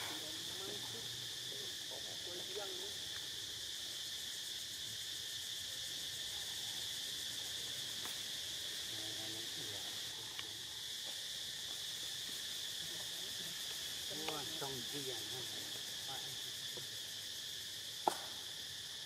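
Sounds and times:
forest insects chirring: 0.0 - 19.0.

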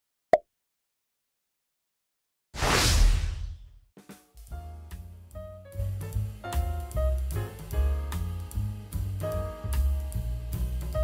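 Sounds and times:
loud whoosh with deep rumble: 2.6 - 3.8.

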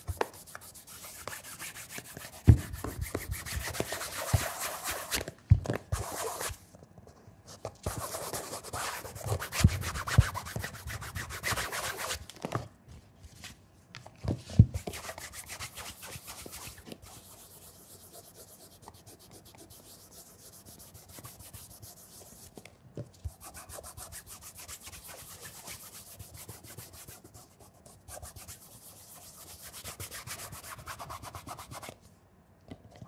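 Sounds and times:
cloth rubbing a leather shoe: 0.0 - 5.2.

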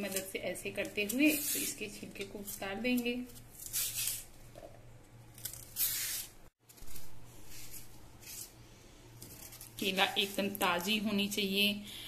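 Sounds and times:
knife scraping banana peel: 0.8 - 4.3.

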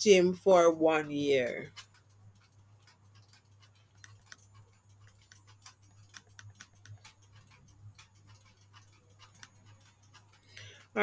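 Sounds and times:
faint rapid ticking: 0.0 - 11.0.

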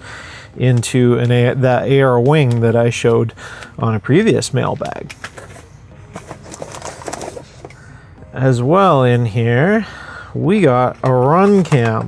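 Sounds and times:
hands rummaging in cardboard box: 5.0 - 7.8
plastic bag crinkling: 5.0 - 7.8.

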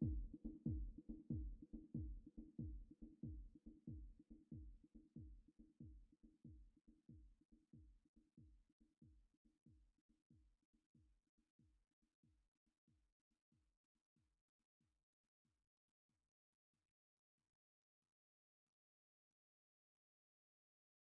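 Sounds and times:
drum machine kick thumps: 0.0 - 8.6.

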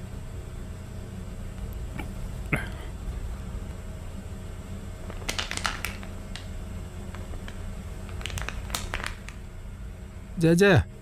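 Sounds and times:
low steady hum: 0.0 - 11.0
plastic bottle crinkling: 5.1 - 6.5, 7.1 - 9.4.

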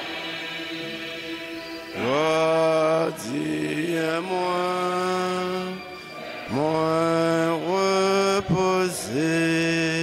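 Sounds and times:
man chanting a prayer: 6.5 - 10.0.

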